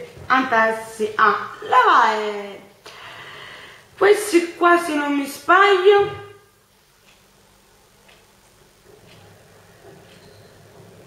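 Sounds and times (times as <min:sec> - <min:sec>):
person speaking: 0:00.0 - 0:02.6, 0:04.0 - 0:06.4
faint ticking: 0:06.7 - 0:11.0.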